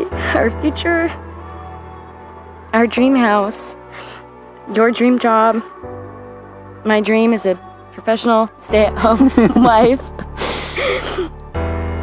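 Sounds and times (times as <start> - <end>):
soft background music: 0.0 - 12.0
woman laughing breathily: 9.0 - 11.3.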